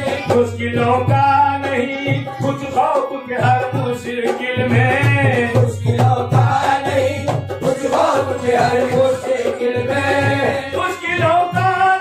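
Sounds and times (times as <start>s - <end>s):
hand drum beat: 0.0s - 11.8s
harmonium: 0.0s - 12.0s
men singing: 0.0s - 12.0s.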